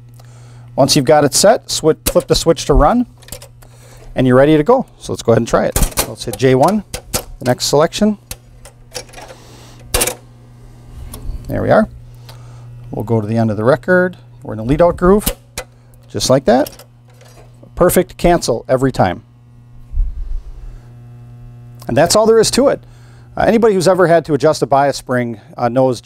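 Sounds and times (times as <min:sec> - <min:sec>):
jukebox mechanism rumble: 0:00.0 - 0:25.5
steady low hum: 0:00.0 - 0:26.0
jukebox mechanism clicking: 0:02.0 - 0:02.5, 0:03.2 - 0:04.1, 0:05.7 - 0:10.3, 0:15.2 - 0:17.7.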